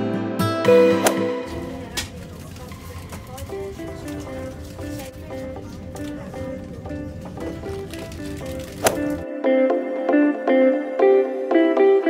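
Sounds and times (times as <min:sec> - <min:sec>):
gentle melody: 0:00.3 - 0:12.0.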